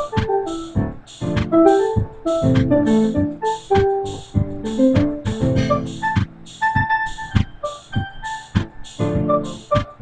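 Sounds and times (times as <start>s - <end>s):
funk keyboard notes: 0.0s - 10.0s
repeating drum beat: 0.0s - 10.0s.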